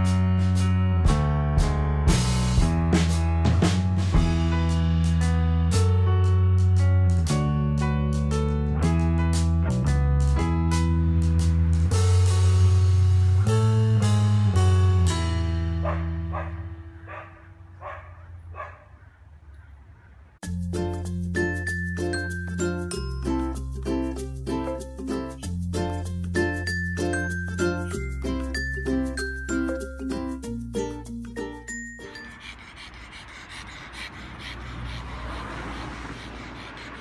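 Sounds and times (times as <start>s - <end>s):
small dog yapping: 15.9s - 19.0s
dog panting hard: 31.7s - 37.0s.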